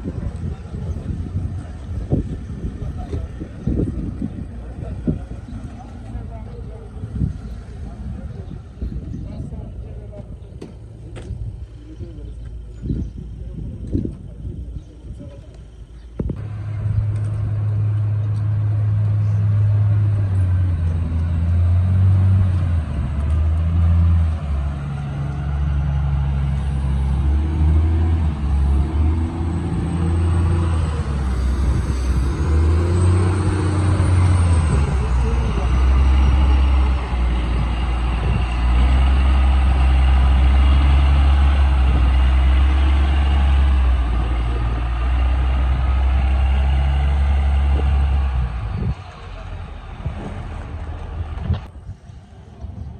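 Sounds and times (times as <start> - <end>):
heavy diesel engine running: 0.0 - 52.9.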